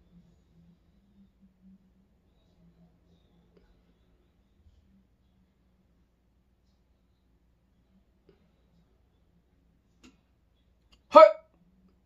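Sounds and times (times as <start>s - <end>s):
man hiccuping: 11.1s - 11.4s.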